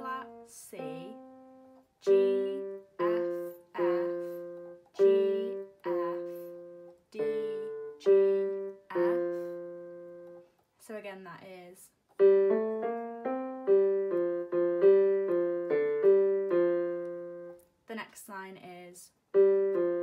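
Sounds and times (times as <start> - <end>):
keyboard piano melody: 0.0 - 10.6, 12.1 - 17.7, 19.3 - 20.0.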